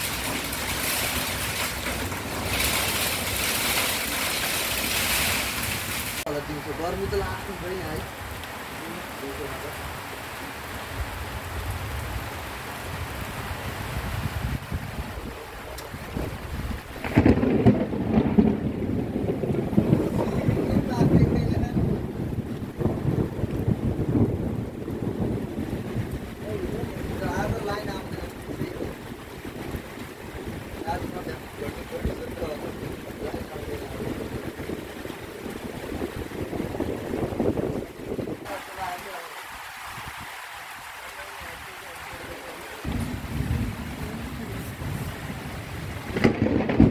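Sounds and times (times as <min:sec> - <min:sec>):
rain hiss: 0:00.0 - 0:46.9
wind gusts buffeting microphone: 0:10.9 - 0:39.2, 0:39.8 - 0:46.9.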